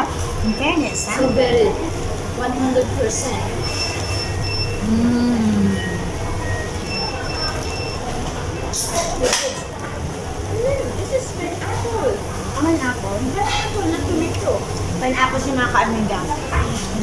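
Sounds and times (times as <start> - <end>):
diner humming while eating: 0.0 - 17.0
steady low hum: 0.0 - 17.0
short high electronic beeps: 3.6 - 4.9, 5.6 - 8.7.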